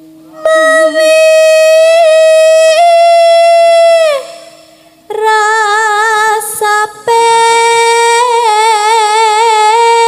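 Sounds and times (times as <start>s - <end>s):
woman singing into a microphone: 0.3s - 10.0s.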